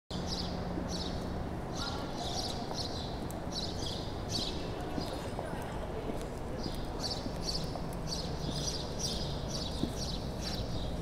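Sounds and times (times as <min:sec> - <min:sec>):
low street rumble: 0:00.1 - 0:11.0.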